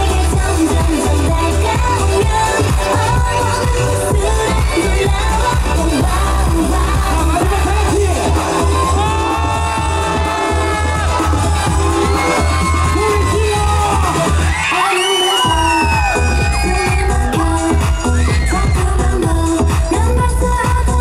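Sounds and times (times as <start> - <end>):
dance track over pa speakers: 0.0 - 21.0.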